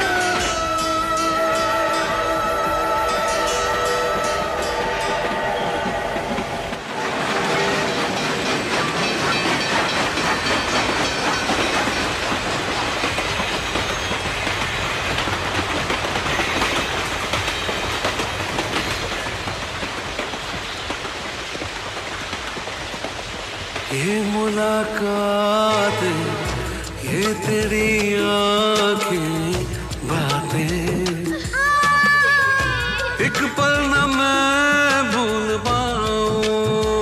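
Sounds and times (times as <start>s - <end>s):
song music: 24.0s - 37.0s.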